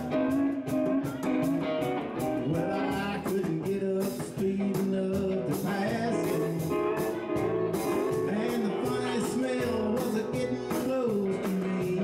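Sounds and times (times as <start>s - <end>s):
live country band playing: 0.0s - 12.0s.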